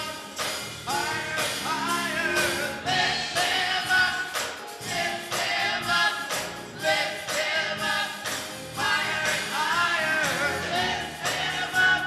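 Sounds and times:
gospel choir singing: 0:00.0 - 0:12.0
instrumental accompaniment: 0:00.0 - 0:12.0.

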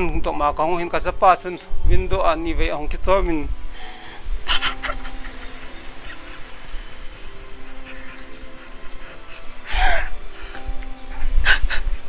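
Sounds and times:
soft background music: 0:00.0 - 0:12.0
man crying: 0:04.5 - 0:10.4.

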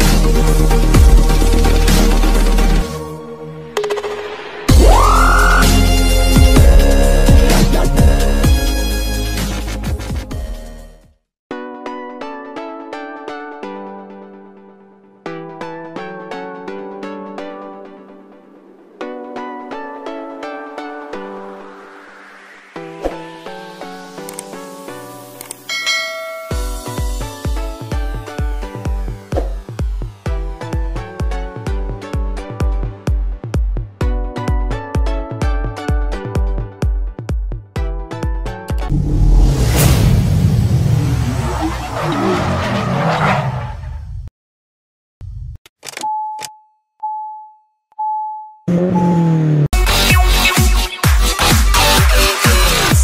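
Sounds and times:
electronic music: 0:00.0 - 0:10.7, 0:16.1 - 0:33.1, 0:48.7 - 0:53.0
synthesizer chord with deep bass: 0:04.5 - 0:09.8
bright bell chime: 0:25.7 - 0:27.2
electronic dance music: 0:48.9 - 0:53.0.

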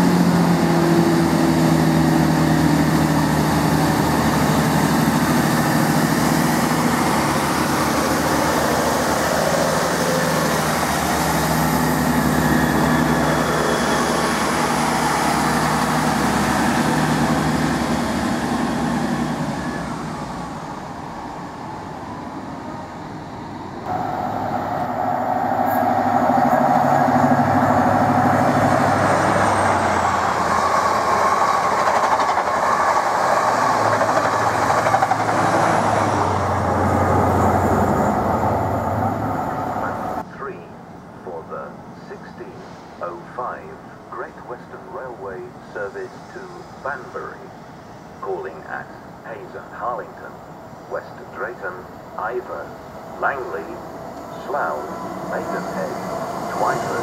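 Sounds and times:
diesel train engine drone: 0:00.0 - 0:57.0
train passing at speed: 0:00.0 - 0:57.0.

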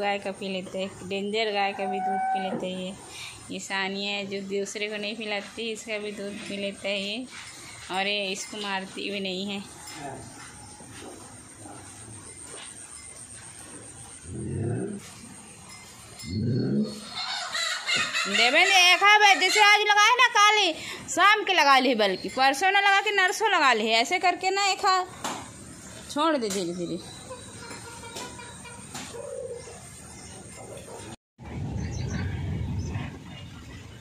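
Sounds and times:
cow lowing: 0:01.6 - 0:02.8, 0:10.6 - 0:17.2
pigeon cooing: 0:27.3 - 0:31.1.

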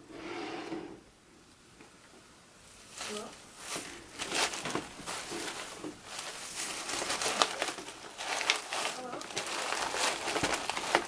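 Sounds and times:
plastic grass rustling: 0:02.6 - 0:11.0.

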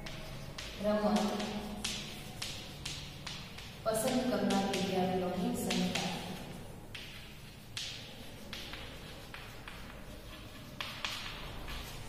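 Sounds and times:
chalk scratching on chalkboard: 0:00.0 - 0:12.0.

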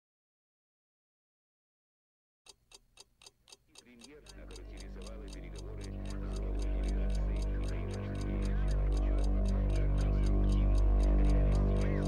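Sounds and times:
clock-like ticking: 0:02.5 - 0:12.0
low drone with wavering tones: 0:05.9 - 0:12.0.

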